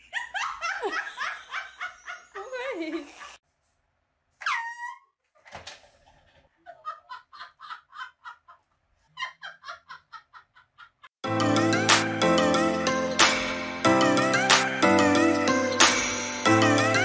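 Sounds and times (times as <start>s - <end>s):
person laughing: 6.6s - 11.1s.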